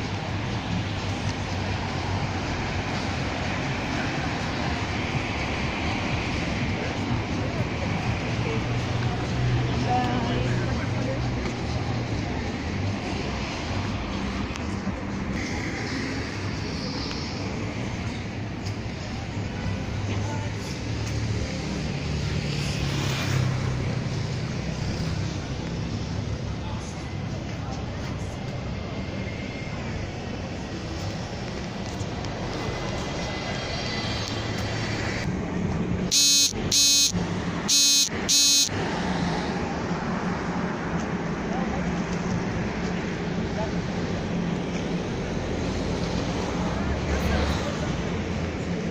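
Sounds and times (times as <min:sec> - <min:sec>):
people's voices: 0:00.0 - 0:35.3, 0:39.4 - 0:48.9
street traffic going by: 0:00.0 - 0:48.9
vehicle horn blasts: 0:36.1 - 0:38.7.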